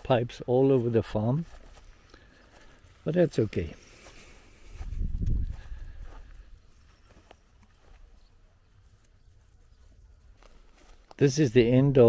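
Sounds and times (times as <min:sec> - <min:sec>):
light ticks and rustles: 0:00.8 - 0:11.6
low rumble on microphone: 0:04.8 - 0:06.1.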